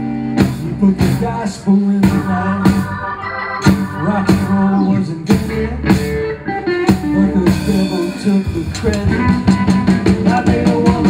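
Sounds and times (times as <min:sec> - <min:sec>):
electric guitar: 0:00.0 - 0:11.0
rock band playing: 0:00.0 - 0:11.0.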